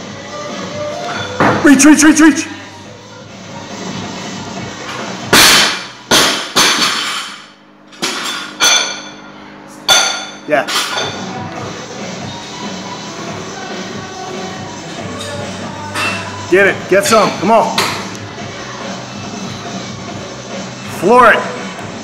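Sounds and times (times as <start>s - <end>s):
barbell dropped and bouncing: 5.3s - 8.9s.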